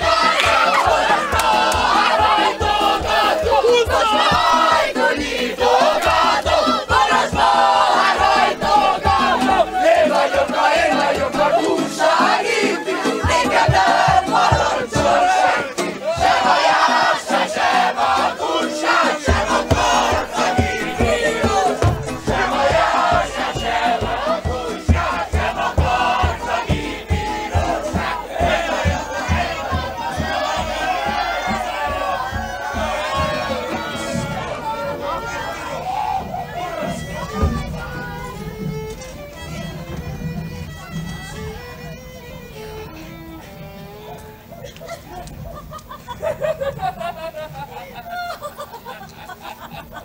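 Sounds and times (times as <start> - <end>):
steady low beat: 0.0 - 43.4
crowd shouting and singing: 0.0 - 47.5.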